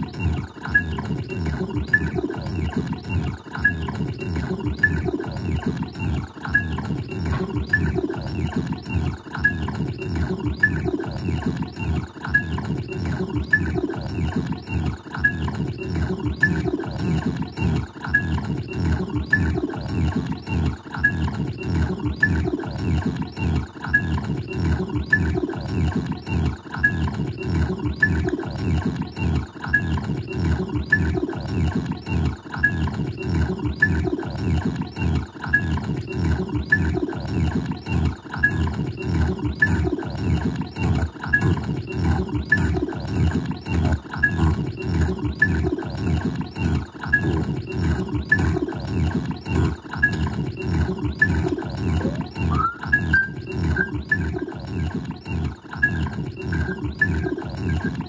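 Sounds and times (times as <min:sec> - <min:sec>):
short high blip: 0:52.5 - 0:53.3
tone sweeping upward: 0:52.5 - 0:53.4.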